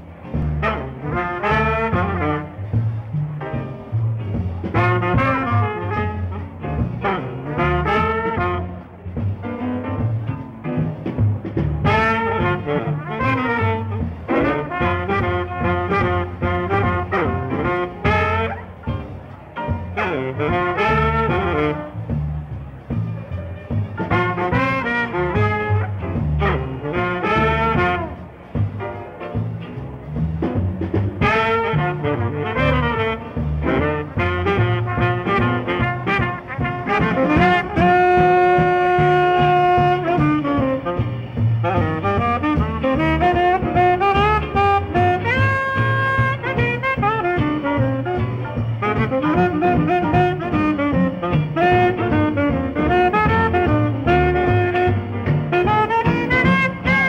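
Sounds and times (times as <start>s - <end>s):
jazz band playing swing: 0.0s - 57.0s.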